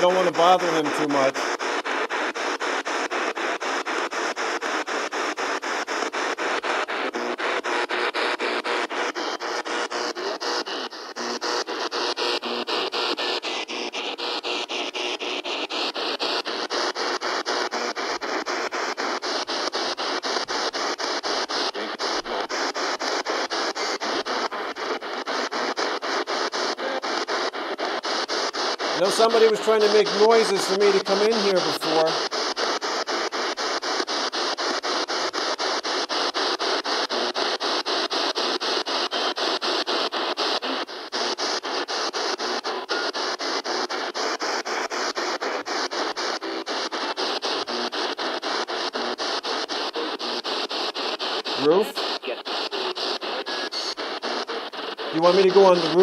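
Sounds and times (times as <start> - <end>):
pulsing radio static: 0.0 - 56.0.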